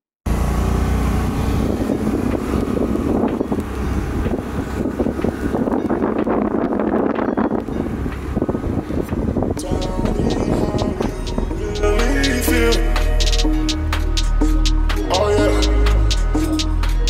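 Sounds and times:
motor scooter running: 0.3 - 11.6
wind buffeting microphone: 1.0 - 11.8.

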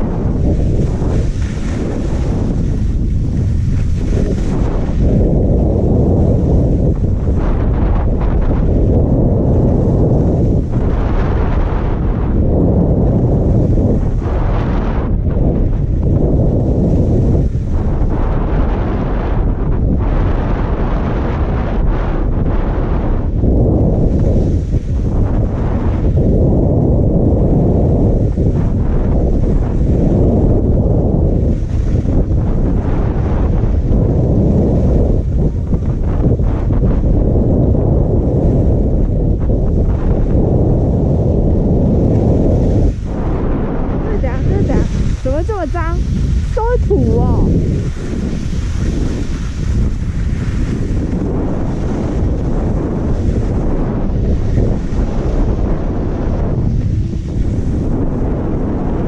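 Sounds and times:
wind buffeting microphone: 0.0 - 59.0
ski edges scraping on snow: 0.1 - 7.5, 44.3 - 58.4.

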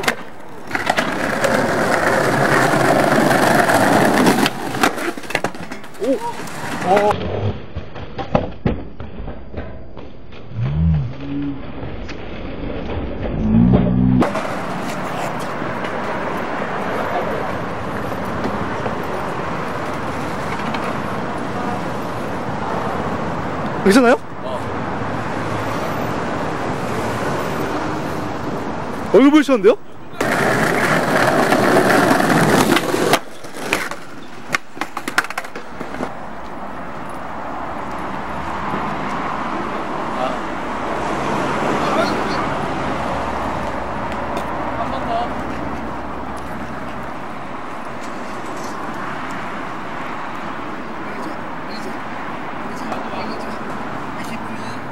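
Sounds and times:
road traffic rushing: 0.0 - 7.7, 10.2 - 54.9.

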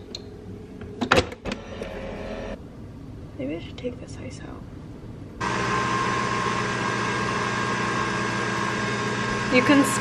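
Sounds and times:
coffee machine motor whirring: 5.4 - 10.0.

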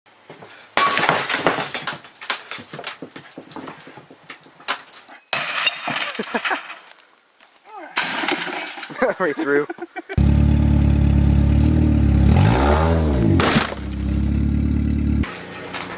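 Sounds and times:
glass fragments tinkling: 5.3 - 6.9, 8.0 - 9.1
glass tube imploding with crash: 8.0 - 9.0.

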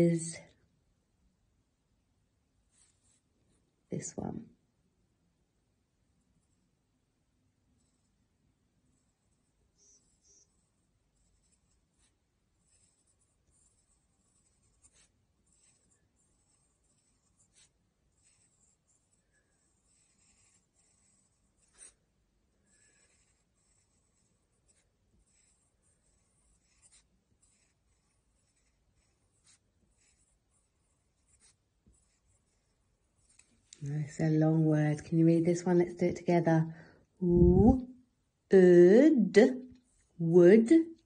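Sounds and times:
pencil scratching on paper: 8.9 - 35.0.

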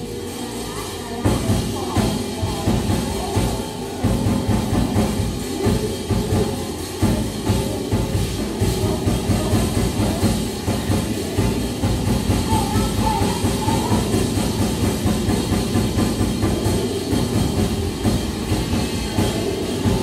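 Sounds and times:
drum kit beat: 0.0 - 20.0.

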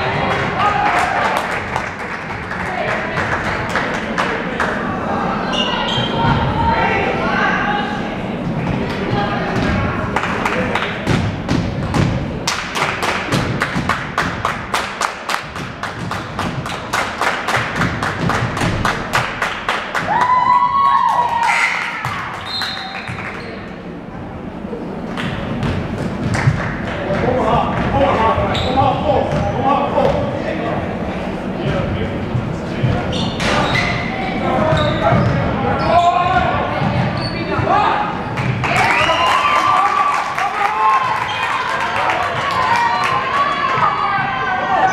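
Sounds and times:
players and spectators calling out: 4.4 - 10.1, 33.0 - 44.9
basketball bouncing: 11.0 - 12.2, 36.8 - 37.7
sneaker squeaks on hardwood: 28.5 - 29.5, 33.0 - 37.7.

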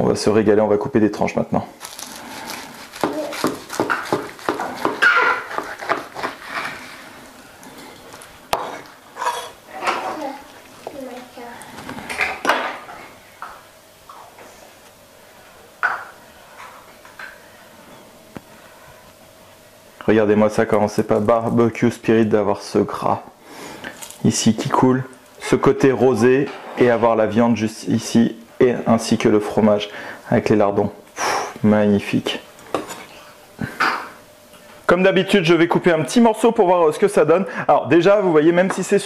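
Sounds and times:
knife scraping and tapping board: 3.0 - 6.7.

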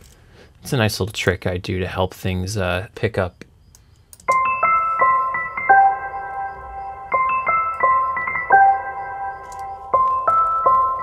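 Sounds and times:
electric piano melody: 4.3 - 11.0.

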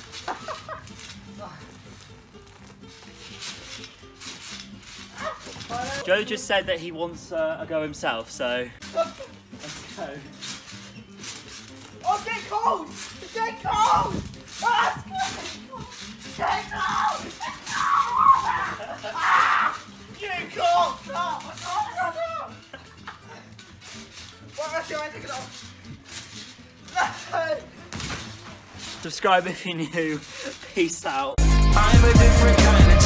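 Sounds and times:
quiet background music: 0.0 - 33.0.

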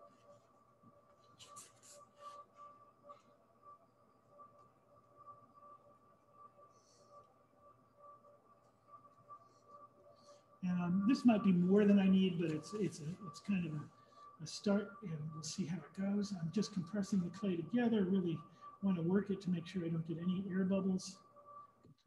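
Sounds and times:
faint high hum: 0.0 - 22.0.

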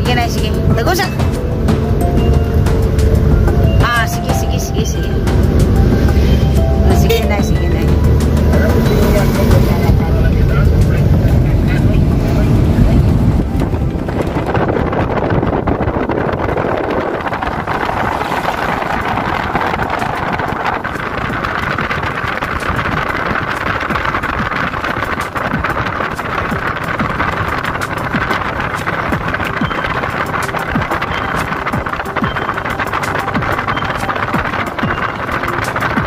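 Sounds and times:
engine and road rumble: 0.0 - 36.0
wind and tyre hiss: 0.0 - 36.0.

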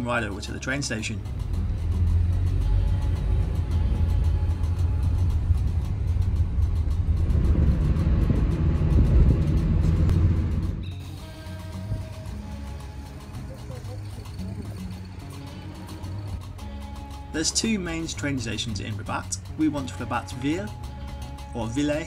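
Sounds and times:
background music: 0.0 - 22.0
car engine rumble: 0.0 - 22.0
road noise: 0.0 - 22.0.

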